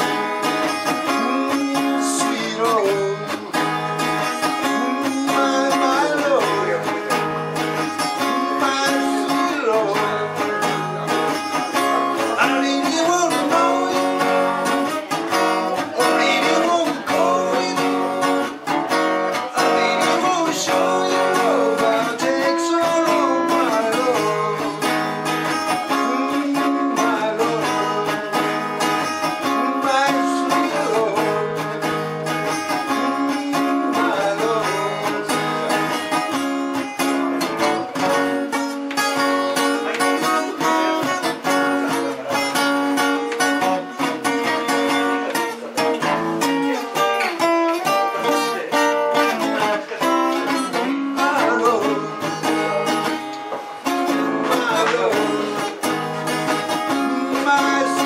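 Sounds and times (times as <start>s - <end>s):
acoustic guitar strummed: 0.0s - 58.0s
man singing: 0.0s - 58.0s.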